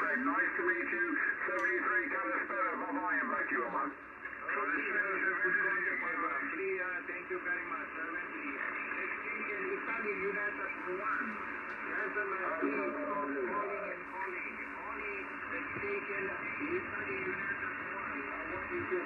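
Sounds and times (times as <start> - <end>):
radio voices calling: 0.0 - 19.0.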